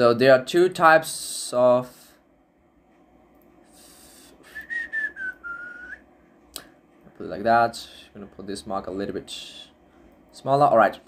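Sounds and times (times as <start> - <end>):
person whistling softly: 4.1 - 6.0.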